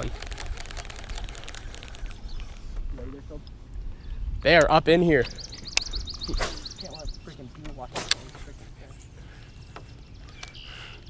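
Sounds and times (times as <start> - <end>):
fishing reel ticking: 0.0 - 2.7
wind rumbling on microphone: 0.0 - 10.5.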